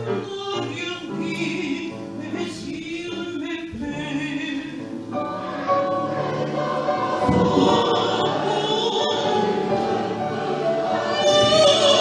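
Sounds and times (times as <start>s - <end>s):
choir singing sustained chords: 4.3s - 12.0s.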